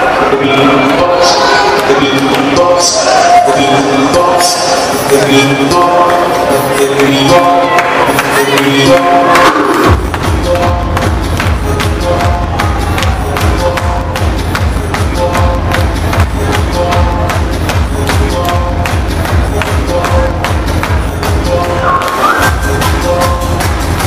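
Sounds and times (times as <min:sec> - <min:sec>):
hardstyle dance music: 0:00.0 - 0:24.0
synth melody: 0:03.8 - 0:24.0
fast kick drum: 0:09.3 - 0:24.0.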